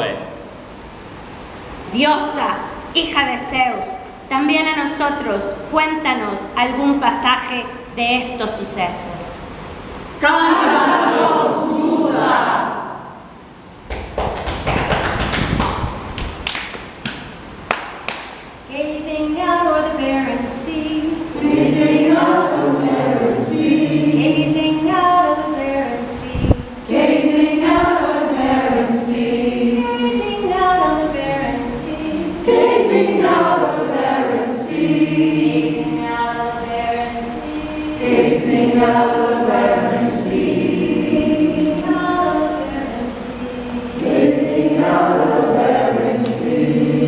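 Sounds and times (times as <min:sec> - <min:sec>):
group of voices singing: 0:09.5 - 0:13.2, 0:19.4 - 0:47.0.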